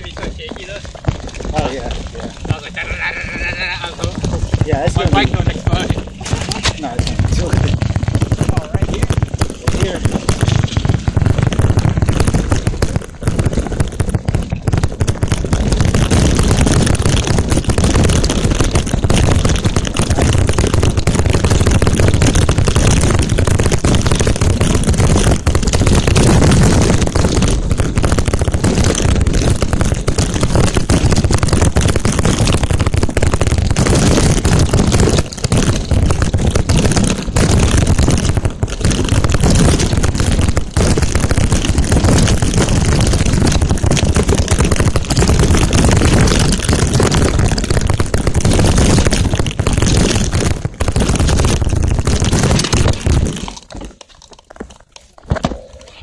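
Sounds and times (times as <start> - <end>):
bike knocking and rattling: 0.0 - 10.8
bike tyres rolling on gravel: 0.0 - 56.0.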